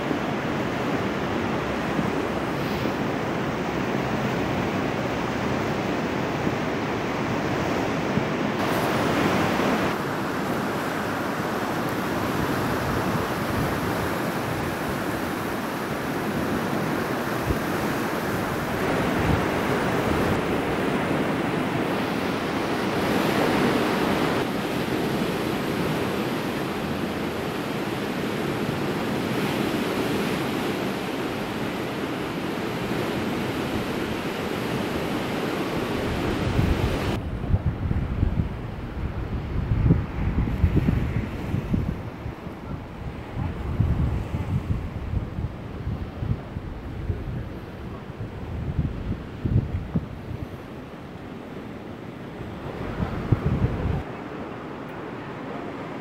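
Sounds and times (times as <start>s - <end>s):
sea water rushing past piers: 0.0s - 56.0s
wind on microphone: 0.0s - 56.0s.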